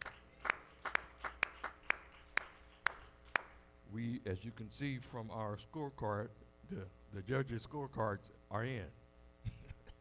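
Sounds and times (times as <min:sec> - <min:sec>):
person clapping slowly: 0:00.0 - 0:03.6.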